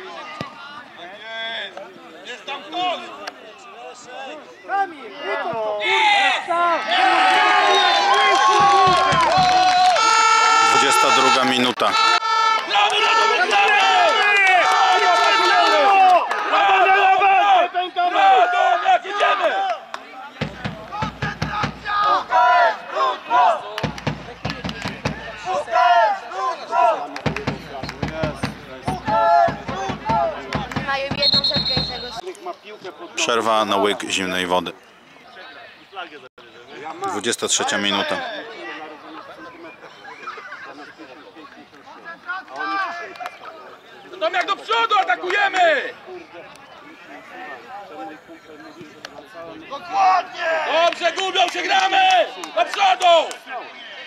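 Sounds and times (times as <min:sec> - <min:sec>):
crowd shouting: 0:00.0 - 0:32.2, 0:42.0 - 0:54.0.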